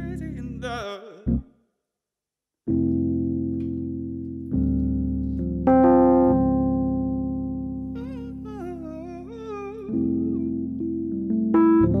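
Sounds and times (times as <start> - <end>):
electric piano chord: 2.7 - 12.0
man humming wordlessly: 8.0 - 10.6.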